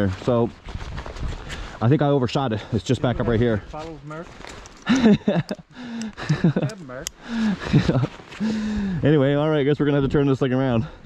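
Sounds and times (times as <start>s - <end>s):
man talking: 0.0s - 0.5s, 1.8s - 4.3s, 6.3s - 8.1s, 8.8s - 11.0s.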